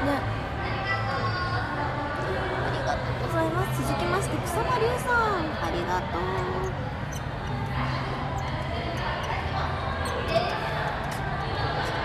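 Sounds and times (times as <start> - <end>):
background chatter: 0.0 - 12.0.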